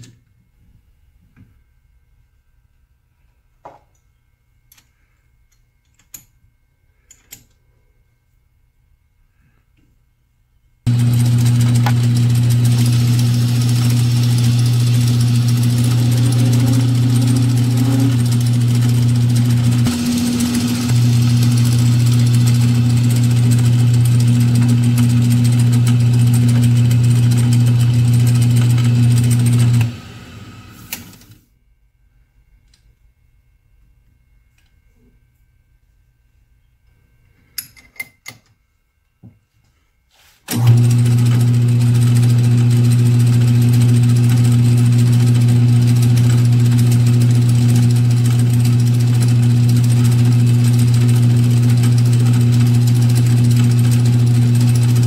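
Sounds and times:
metal lathe cutting: 10.9s - 30.7s.

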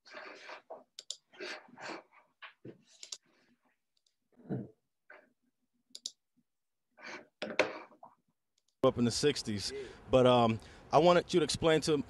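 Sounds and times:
computer mouse clicks: 1.0s - 1.2s, 3.0s - 3.2s, 5.9s - 6.2s.

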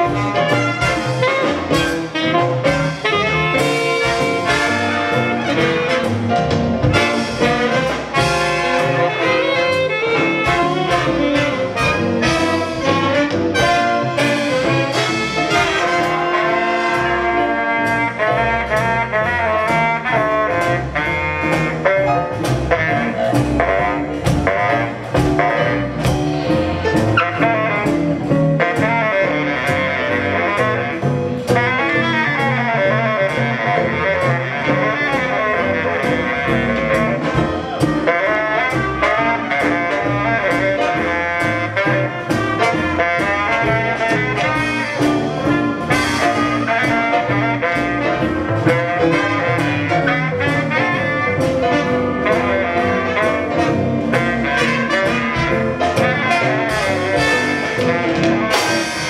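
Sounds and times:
drums keeping a steady beat: 0.0s - 59.0s
jazz big band playing: 0.0s - 59.0s
saxophone solo: 0.0s - 59.0s.

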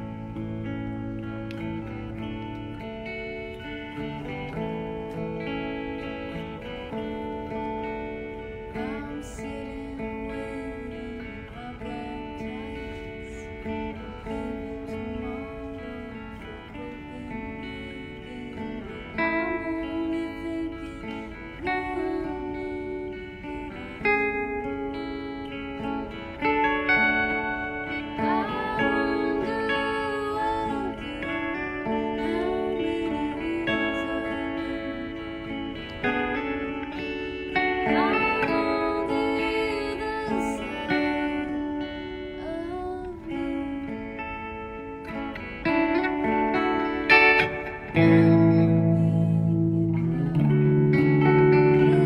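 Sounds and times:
electric guitars playing: 0.0s - 52.0s
woman singing: 0.0s - 52.0s.

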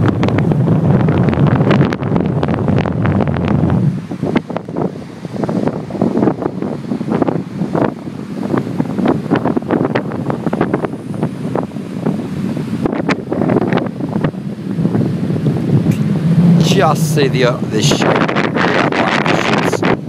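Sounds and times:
storm wind buffeting microphone: 0.0s - 20.0s
surf washing on shore: 0.0s - 20.0s.

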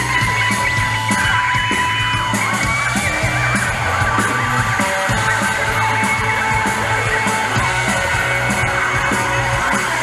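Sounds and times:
drum kit: 0.0s - 10.0s
electric bass: 0.0s - 10.0s
electric guitars sustained notes: 0.0s - 10.0s.

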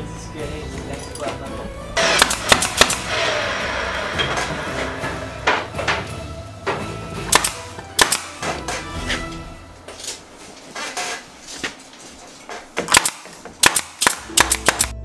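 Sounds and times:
nail gun firing into wood: 2.0s - 3.4s, 7.3s - 8.8s, 12.8s - 15.0s.

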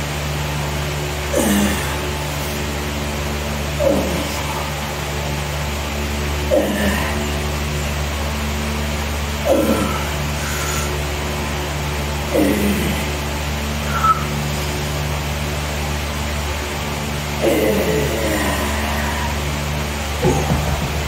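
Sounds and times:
steady motor hum: 0.0s - 21.0s
man grunting: 1.3s - 2.7s, 3.7s - 5.0s, 6.4s - 7.6s, 9.4s - 10.8s, 12.3s - 13.2s, 17.4s - 19.4s.

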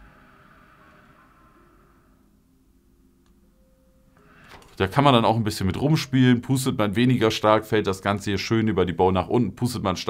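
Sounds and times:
hookah valve hissing: 0.0s - 2.4s.

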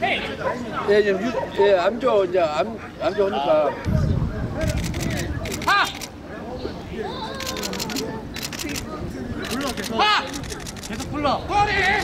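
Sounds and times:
voices calling: 0.0s - 12.0s
camera shutter clicks: 4.6s - 6.1s, 7.4s - 11.0s.

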